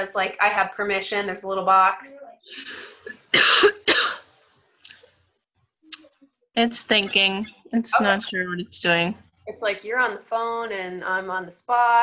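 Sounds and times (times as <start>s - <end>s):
woman coughing: 3.3s - 4.2s.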